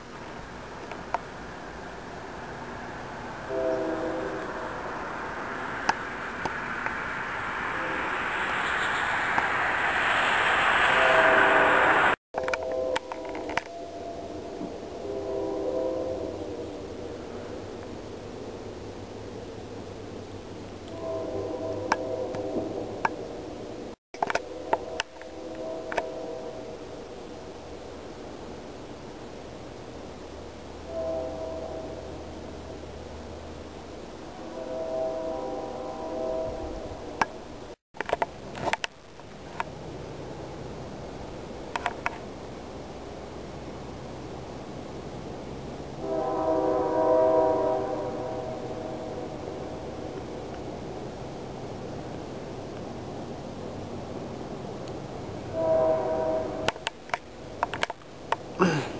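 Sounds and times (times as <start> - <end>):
loud rushing hiss: 0.0 - 12.2
distant locomotive air horn: 2.0 - 17.8, 20.8 - 23.1, 24.3 - 27.0, 30.8 - 33.0, 34.2 - 37.4, 45.9 - 50.5, 55.4 - 56.9.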